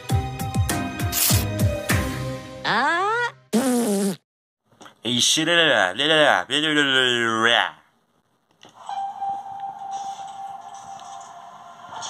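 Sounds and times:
cartoonish vocal calls: 2.6s - 3.7s.

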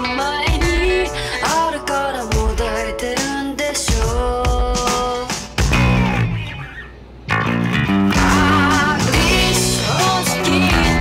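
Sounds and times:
rock band with guitars: 0.0s - 11.0s
electric bass playing: 5.6s - 11.0s.

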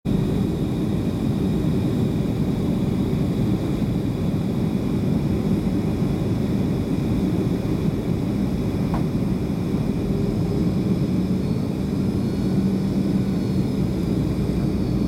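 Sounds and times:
airliner engine rumble in cabin: 0.1s - 15.0s.

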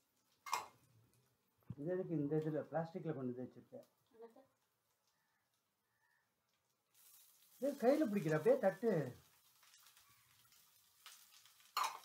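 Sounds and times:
greens frying in a pan: 0.0s - 1.5s, 3.7s - 12.0s
pan being stirred: 6.9s - 12.0s.

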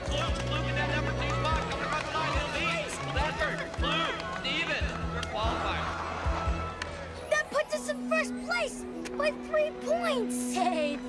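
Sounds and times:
crowd shouting and cheering: 0.0s - 10.3s
background music: 0.0s - 11.0s.

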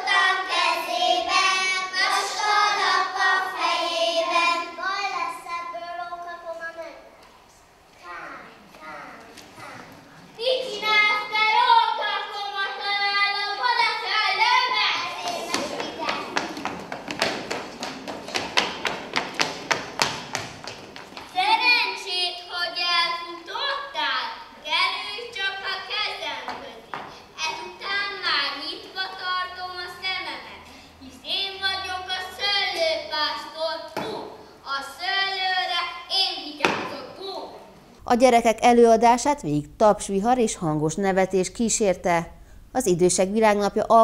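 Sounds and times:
children singing in unison: 0.0s - 4.8s
children singing: 0.0s - 5.1s, 10.6s - 18.4s
children stamping on wooden stage: 15.0s - 21.6s.

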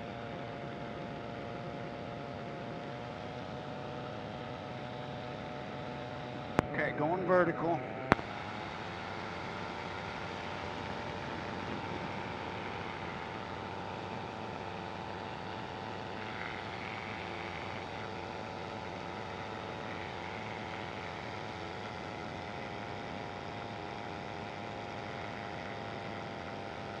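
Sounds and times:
ultralight engine and propeller drone: 0.0s - 27.0s.

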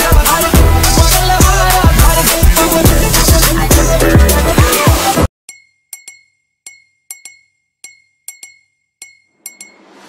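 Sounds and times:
music track: 0.0s - 5.3s
glassy chime strikes: 5.5s - 10.0s.

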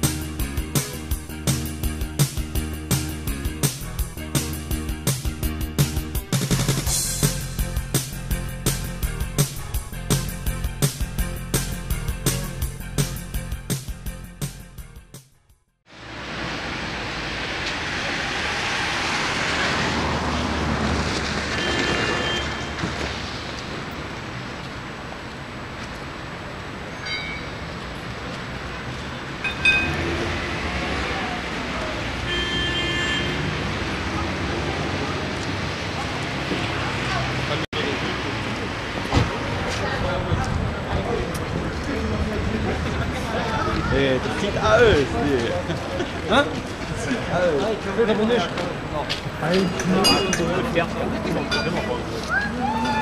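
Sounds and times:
tram rumbling: 15.9s - 32.3s, 33.4s - 53.0s
high metallic clink: 27.0s - 27.7s, 49.5s - 50.6s
tram warning bell strikes: 27.0s - 27.7s, 29.4s - 30.1s, 49.5s - 50.8s
people talking: 34.2s - 53.0s.

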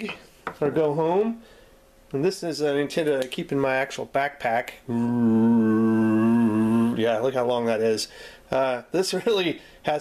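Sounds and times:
man humming a long note: 4.9s - 7.1s.

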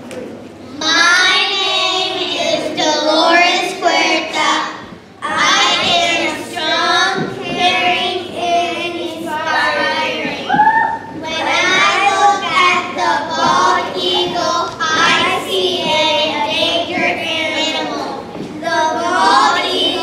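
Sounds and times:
children singing in unison: 0.7s - 20.0s.

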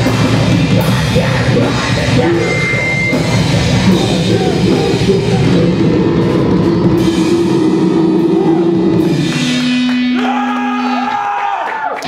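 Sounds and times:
sliding pitched guitar tones: 0.0s - 11.1s
live rock band playing: 0.0s - 11.4s.

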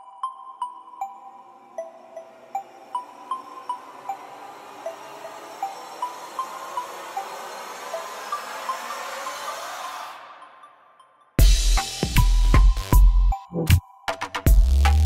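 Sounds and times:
chime-like notes: 0.0s - 8.8s.

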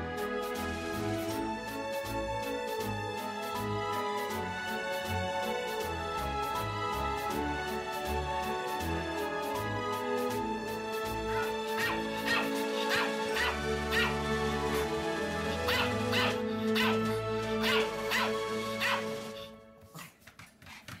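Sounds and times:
background music: 0.0s - 20.4s
small dog yapping: 11.4s - 14.2s, 15.7s - 19.1s.

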